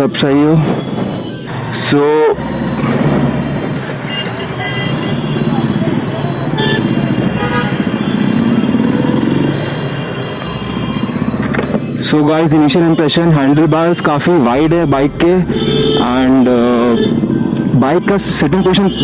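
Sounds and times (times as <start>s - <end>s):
motorcycle engine accelerating: 2.4s - 12.4s
car horn beeps: 2.4s - 17.6s, 18.4s - 19.0s.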